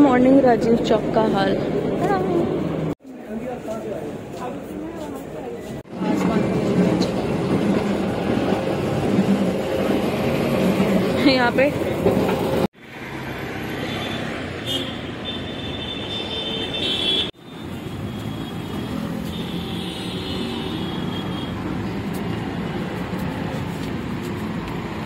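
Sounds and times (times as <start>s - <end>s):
road traffic noise: 0.0s - 25.0s.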